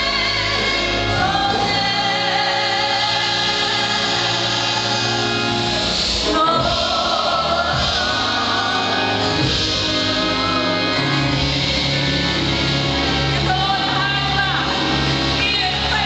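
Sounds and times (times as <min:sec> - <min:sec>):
group singing gospel song: 0:00.0 - 0:16.0
keyboard accompaniment: 0:00.0 - 0:16.0.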